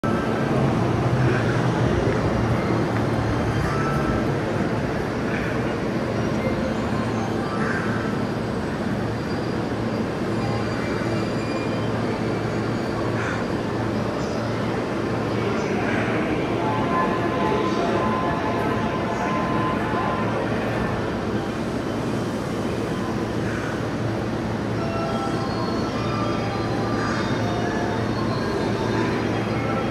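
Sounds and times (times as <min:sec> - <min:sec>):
railway station hum and rumble: 0:00.0 - 0:29.9.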